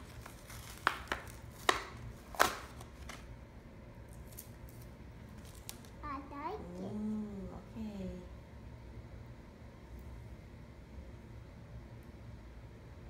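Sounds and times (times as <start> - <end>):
packaging handling noise: 0.0 - 3.3.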